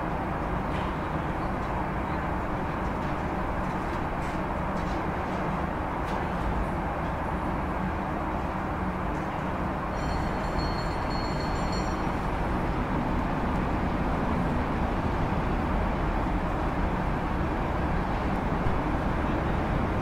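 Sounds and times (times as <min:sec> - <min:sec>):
vehicle traffic rumble: 0:00.0 - 0:20.0.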